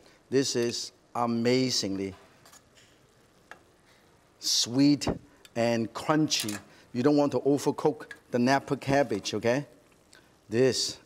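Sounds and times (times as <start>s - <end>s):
metal tongs click: 6.3s - 6.7s.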